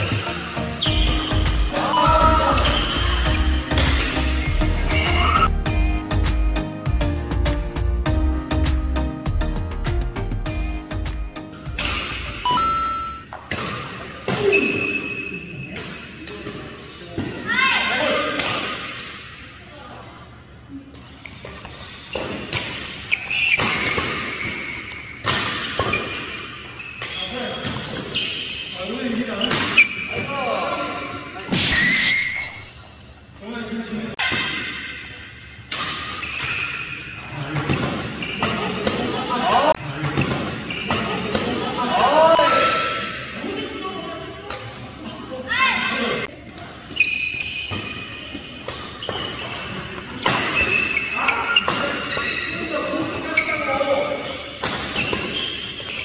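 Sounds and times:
background music: 0.0s - 13.2s
rackets hitting shuttlecock: 3.7s - 4.3s, 11.7s - 12.5s, 54.5s - 56.0s.

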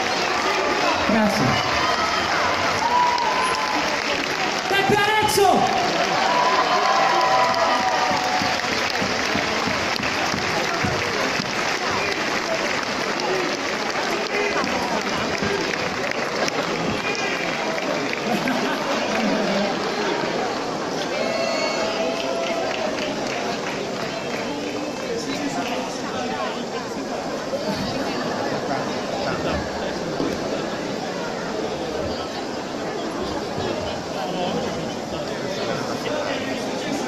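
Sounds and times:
audience applauding: 0.0s - 26.5s.

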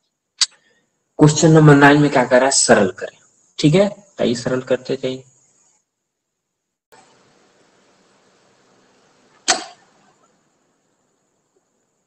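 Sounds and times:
faint room hiss: 0.0s - 12.0s
sharp knock: 9.4s - 9.8s.

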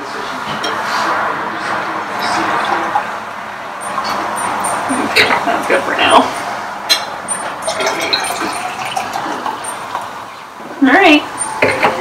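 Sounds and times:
champagne fizzing in a glass: 7.7s - 9.9s.

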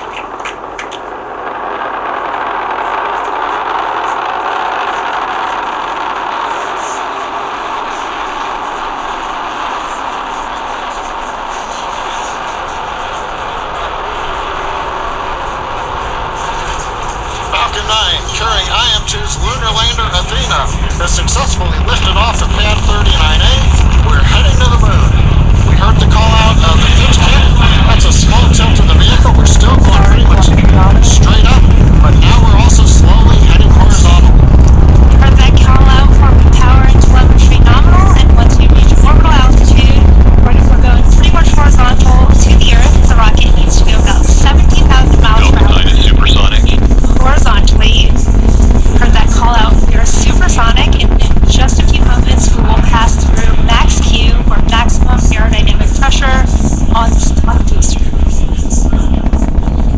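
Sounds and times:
rocket engines rumbling and crackling: 0.0s - 59.9s.

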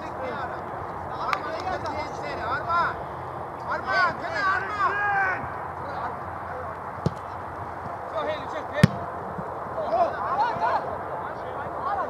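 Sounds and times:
outdoor noise: 0.0s - 12.0s
distant football players shouting: 1.4s - 12.0s.

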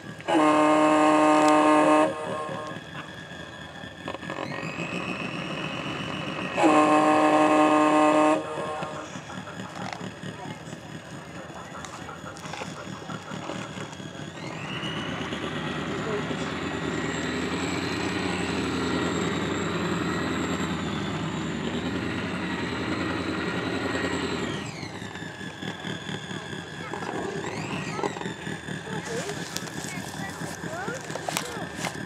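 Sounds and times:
electric motor whine: 0.0s - 32.0s.

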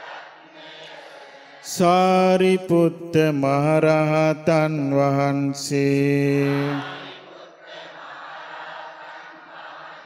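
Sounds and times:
man chanting over microphone: 1.6s - 7.1s.

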